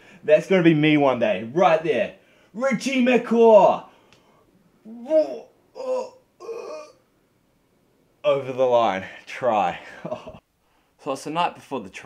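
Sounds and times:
man crying out excitedly: 4.9 - 7.0.

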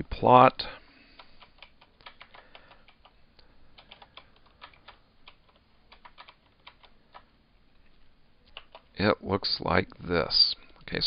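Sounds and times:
computer keyboard typing: 1.2 - 7.3, 8.5 - 9.0.

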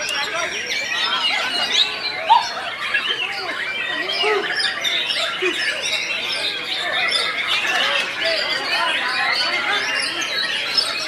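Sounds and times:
chorus of songbirds singing: 0.0 - 11.0
people's voices: 0.0 - 11.0.

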